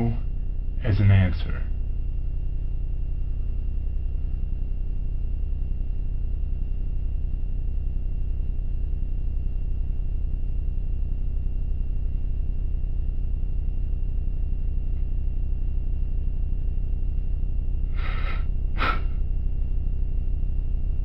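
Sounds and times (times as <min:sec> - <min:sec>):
high-pitched whine: 0:00.0 - 0:21.0
low droning hum: 0:00.0 - 0:21.0.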